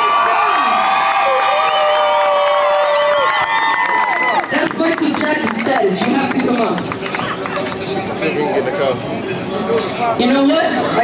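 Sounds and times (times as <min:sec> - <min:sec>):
crowd cheering and screaming: 0:00.0 - 0:04.7.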